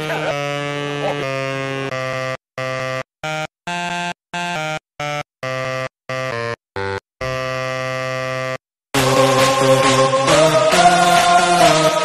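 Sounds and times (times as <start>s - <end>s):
saxophone playing: 0.0s - 12.0s.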